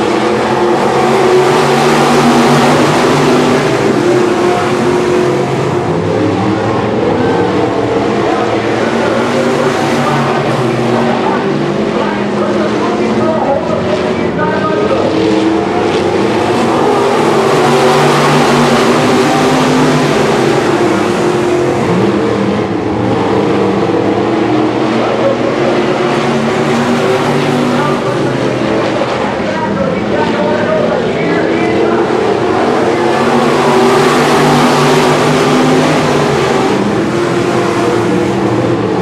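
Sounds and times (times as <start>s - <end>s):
race car engines: 0.0s - 39.0s.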